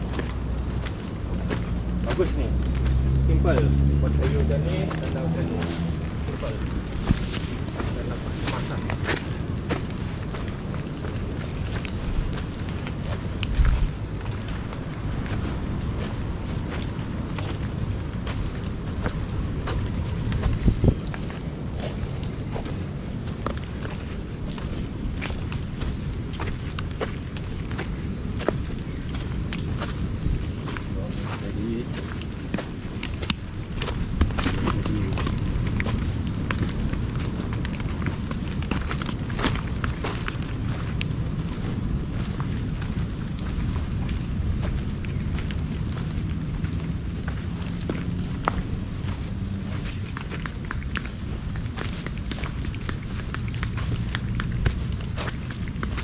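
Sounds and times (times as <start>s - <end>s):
footsteps on muddy trail: 0.0s - 56.0s.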